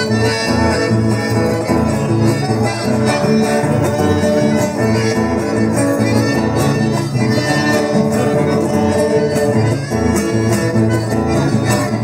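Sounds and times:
accordion: 0.0 - 12.0
acoustic guitars playing: 0.0 - 12.0.

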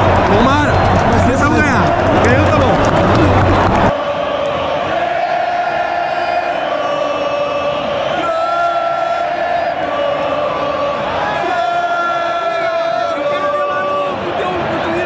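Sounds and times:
close voices and crowd noise: 0.0 - 15.0
stadium crowd chanting: 0.0 - 15.0.

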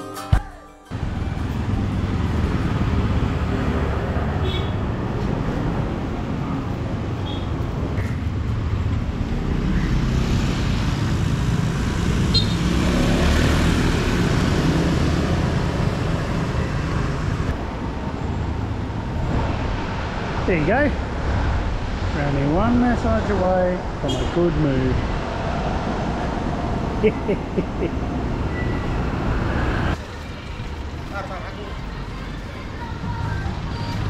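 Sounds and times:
motor scooters passing: 1.0 - 7.2, 8.2 - 17.6, 25.2 - 33.9.

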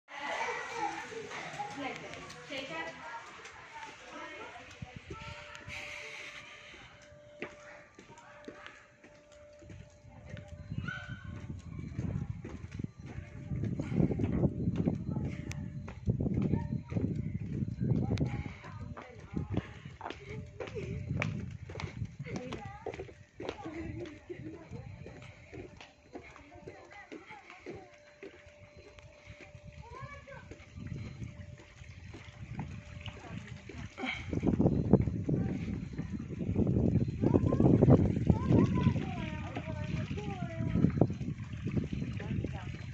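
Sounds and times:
children's voices: 0.1 - 6.8, 22.2 - 30.6, 37.2 - 40.8
indistinct chatter of voices: 0.1 - 42.9.

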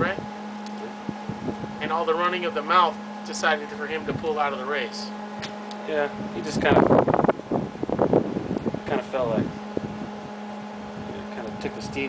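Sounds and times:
steady low hum: 0.0 - 12.0
wind buffeting microphone: 0.0 - 12.0
men talking: 1.8 - 5.2, 5.8 - 7.0, 8.8 - 9.6, 11.0 - 12.0.

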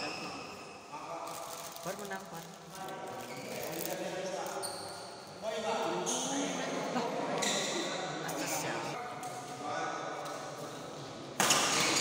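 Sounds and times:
spectators talking indistinctly: 5.8 - 9.1.

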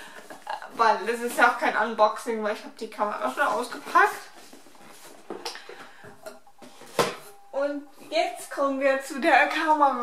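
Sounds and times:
objects knocking and rustling: 3.4 - 7.5.

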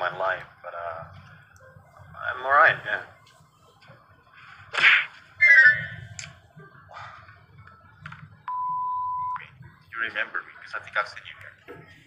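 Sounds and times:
censor bleep: 8.4 - 9.4.

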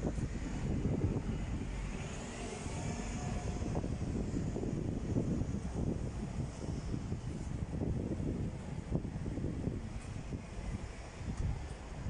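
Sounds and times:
bus engine and tyre rumble: 0.0 - 12.0.

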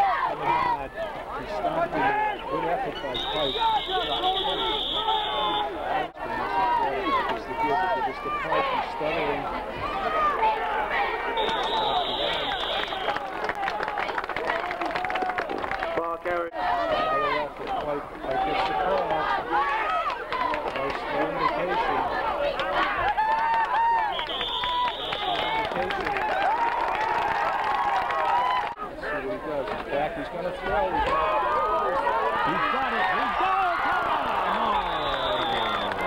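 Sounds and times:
spectators shouting and cheering: 0.0 - 36.0
referee's whistle: 2.2 - 5.8, 11.3 - 13.2, 23.9 - 25.6, 34.4 - 36.0.

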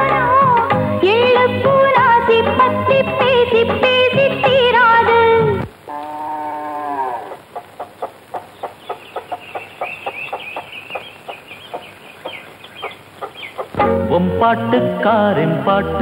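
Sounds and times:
music: 0.0 - 5.7, 13.8 - 16.0
hens clucking: 5.9 - 13.8.

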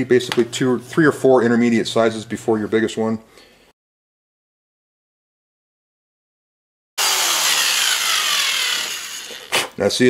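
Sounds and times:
cordless drill boring into plastic: 7.0 - 9.8.

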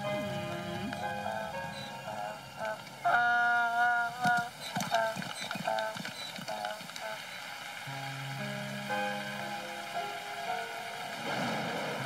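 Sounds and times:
donkey braying: 0.0 - 6.8
gentle background music: 0.0 - 12.0.

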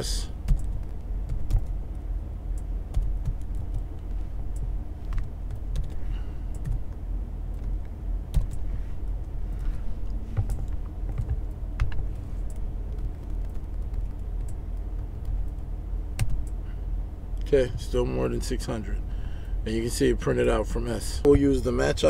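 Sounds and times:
low hum: 0.0 - 22.0
keyboard typing: 0.5 - 1.8, 2.5 - 6.9, 10.4 - 15.6, 16.2 - 16.6.

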